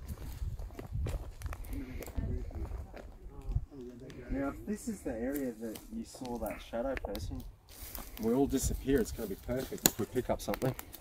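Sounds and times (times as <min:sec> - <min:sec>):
footsteps on rough ground: 0:00.0 - 0:11.0.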